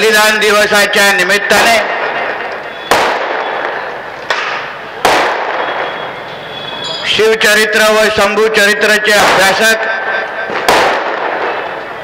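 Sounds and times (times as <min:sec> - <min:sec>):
firecracker bangs with echo: 0:01.4 - 0:06.9, 0:09.1 - 0:12.0.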